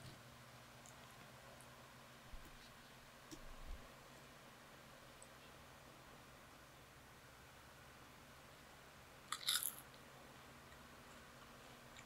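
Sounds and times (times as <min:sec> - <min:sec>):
electric fan hiss: 0:00.0 - 0:12.0
crunching bite of fries: 0:09.3 - 0:09.9.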